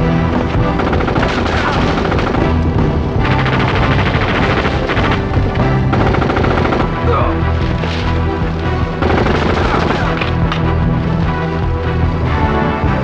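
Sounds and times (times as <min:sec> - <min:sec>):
action film score: 0:00.0 - 0:13.0
automatic rifle fire: 0:00.8 - 0:02.6, 0:03.3 - 0:05.2, 0:06.0 - 0:07.0, 0:09.0 - 0:10.4.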